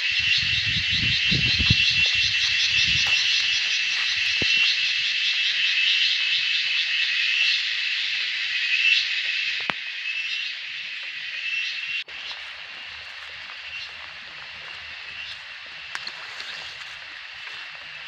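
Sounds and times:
shrill insect chorus: 0.0 - 18.0.

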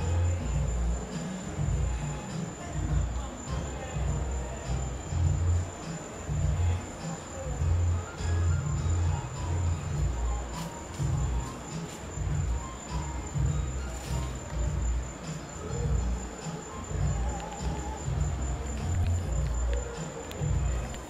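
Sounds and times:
crickets trilling: 0.0 - 21.0.

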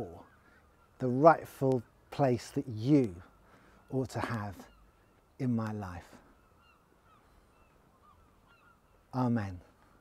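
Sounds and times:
distant bird calls: 0.0 - 10.0.

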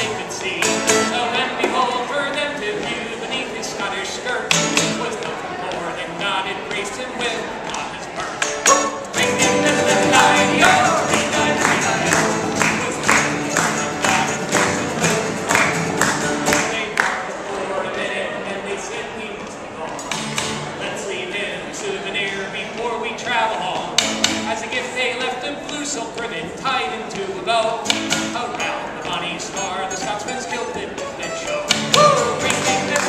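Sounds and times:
mandolin: 0.0 - 17.0, 23.8 - 26.4, 27.6 - 33.0
strummed acoustic guitars: 0.0 - 33.0.

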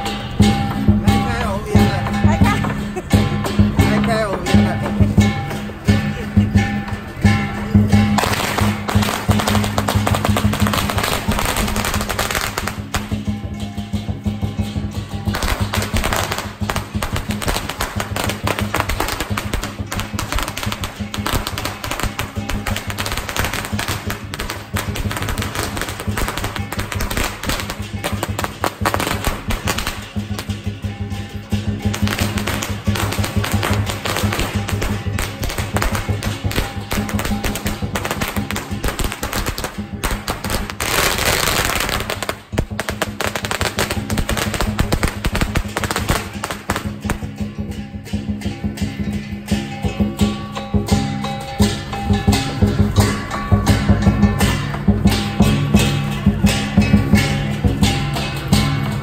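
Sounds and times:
firecrackers crackling: 0.0 - 59.0
music: 0.0 - 59.0.

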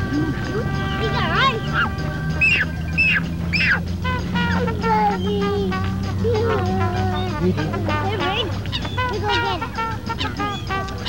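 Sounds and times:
background music of held notes: 0.0 - 11.0
ducks and geese calling: 0.0 - 11.0
loud descending honks: 0.0 - 11.0.

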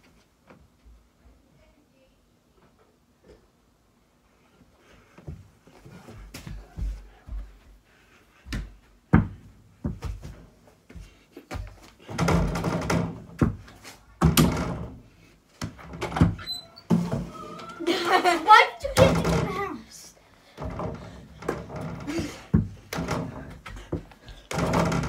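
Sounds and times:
door banging and rattling: 12.0 - 15.0, 15.7 - 17.4, 18.5 - 19.7, 20.6 - 25.0.

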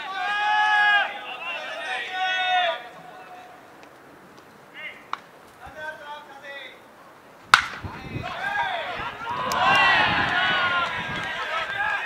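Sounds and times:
people shouting: 0.0 - 3.6, 7.6 - 12.0
bat hitting baseball: 7.5 - 8.0.

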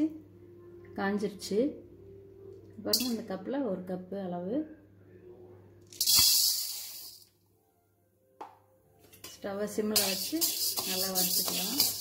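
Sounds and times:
grains rattling onto metal pan: 5.9 - 7.2, 9.9 - 12.0.

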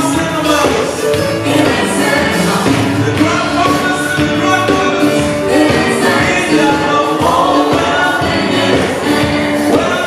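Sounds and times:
gospel choir and band: 0.0 - 10.0.

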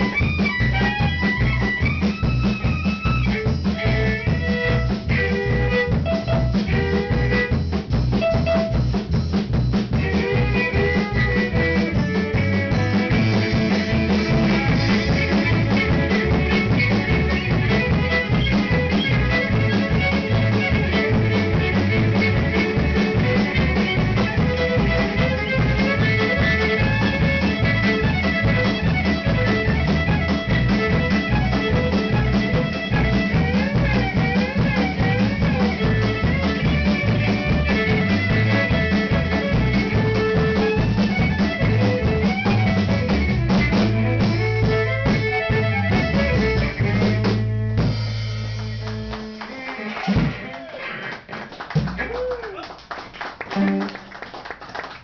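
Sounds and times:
fiddle: 0.0 - 51.2, 53.4 - 54.2
electric guitar: 0.0 - 52.6, 53.4 - 54.3
drum kit beat: 0.0 - 55.0.

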